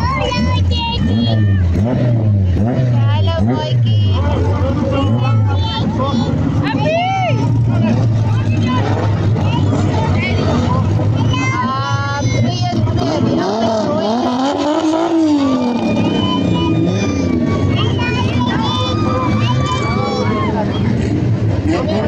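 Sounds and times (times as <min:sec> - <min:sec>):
race car engines rolling past: 0:00.0 - 0:22.0
voices: 0:00.0 - 0:22.0.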